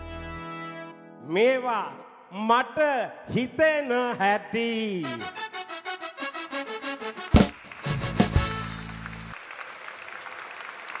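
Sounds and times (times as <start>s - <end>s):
live band playing: 0.0s - 1.2s, 5.0s - 9.4s
audience applauding: 7.0s - 11.0s.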